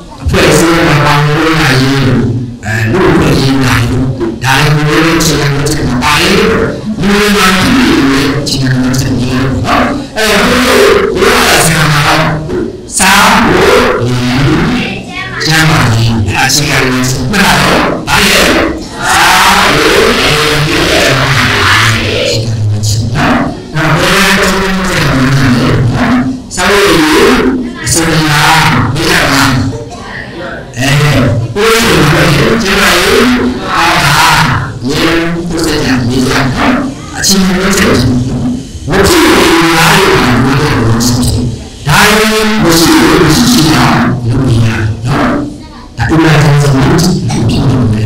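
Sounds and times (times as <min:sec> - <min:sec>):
man speaking loudly over loudspeakers: 0:00.0 - 0:48.0.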